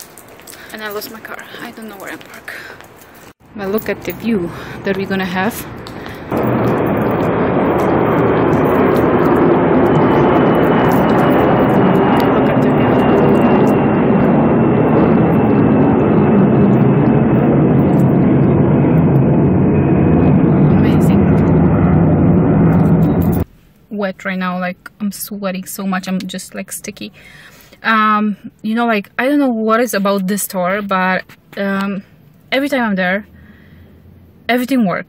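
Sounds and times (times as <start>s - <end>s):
wind on phone microphone: 3.9s - 23.5s.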